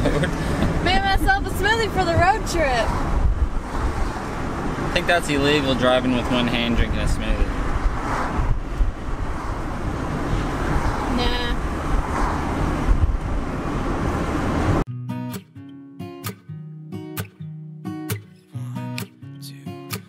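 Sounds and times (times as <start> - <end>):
car road noise: 0.0 - 14.9
strummed acoustic guitar music: 14.9 - 20.0.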